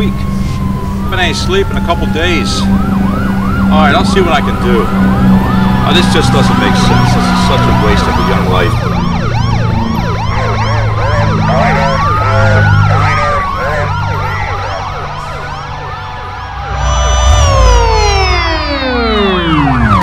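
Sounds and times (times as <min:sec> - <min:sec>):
low steady drone: 0:00.0 - 0:20.0
police sirens yelping and wailing: 0:00.0 - 0:20.0.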